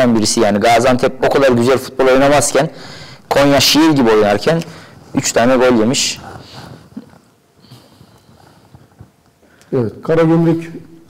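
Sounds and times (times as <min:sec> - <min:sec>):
soft rustle: 0:06.0 - 0:09.5.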